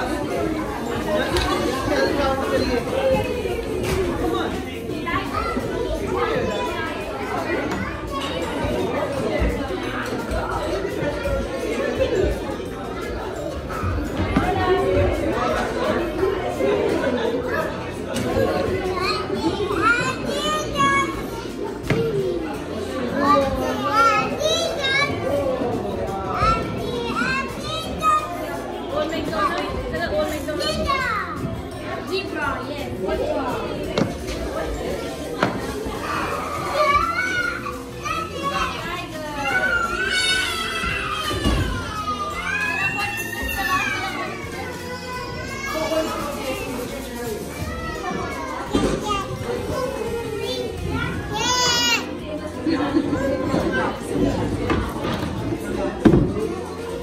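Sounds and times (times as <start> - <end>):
adults talking: 0.0 - 57.0
children talking and calling out: 0.0 - 57.0.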